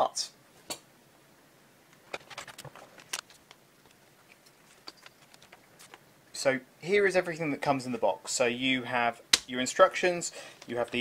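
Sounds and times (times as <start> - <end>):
cardboard and plastic crinkling: 2.0 - 6.0.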